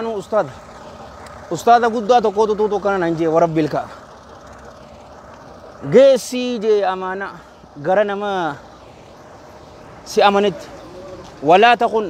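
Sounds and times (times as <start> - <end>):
man speaking: 0.0 - 0.6, 1.5 - 4.1, 5.8 - 8.7, 10.0 - 12.0
steady background noise: 0.0 - 12.0.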